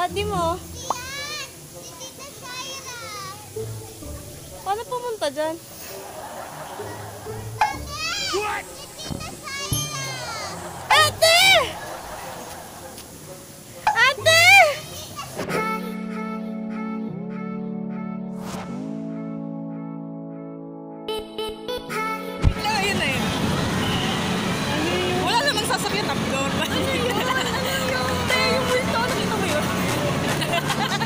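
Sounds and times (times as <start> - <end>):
traffic-like rumble: 0.0 - 15.4, 22.5 - 31.0
voices: 0.0 - 15.4, 22.5 - 31.0
child shouting: 0.8 - 3.5, 7.7 - 11.8, 14.0 - 15.8
child calling out: 9.5 - 11.8, 14.0 - 15.3.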